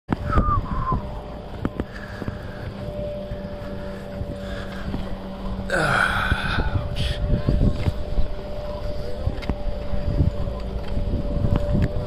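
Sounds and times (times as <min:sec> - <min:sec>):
wind buffeting microphone: 0:00.1 - 0:12.0.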